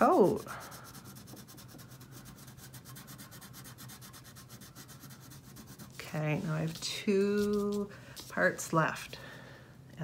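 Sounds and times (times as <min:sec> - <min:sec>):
crayon scratching on paper: 0:00.0 - 0:07.9.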